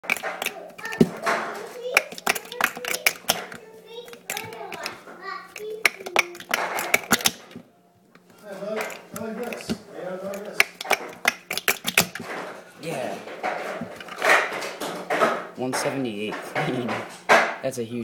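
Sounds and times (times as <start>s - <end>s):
plastic cups clacking: 0.0s - 17.6s.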